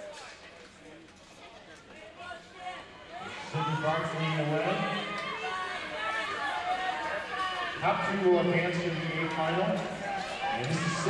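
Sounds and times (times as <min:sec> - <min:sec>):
low crowd chatter: 0:00.0 - 0:11.0.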